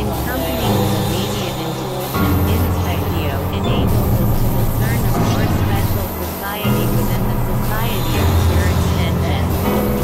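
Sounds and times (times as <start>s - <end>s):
chirping synth glides: 0.0s - 10.0s
synthesizer drones: 0.0s - 10.0s.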